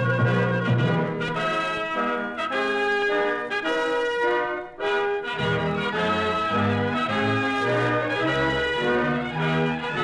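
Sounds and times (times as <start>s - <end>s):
brass-led orchestral music: 0.0s - 10.0s.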